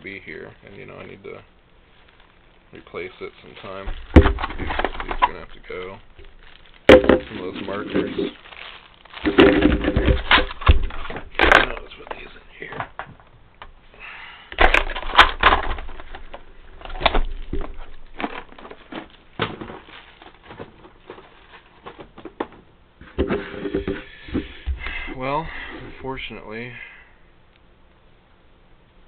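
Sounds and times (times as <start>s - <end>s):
plastic cases knocking on desk: 3.9s - 5.4s, 6.9s - 7.4s, 9.2s - 11.7s.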